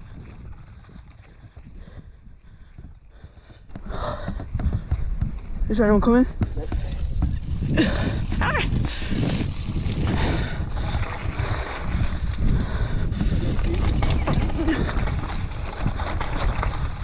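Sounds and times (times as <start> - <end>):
bike rattling over bumps: 0.0 - 17.0
bike tyres crunching over stones: 0.0 - 17.0
wind on microphone: 0.0 - 17.0.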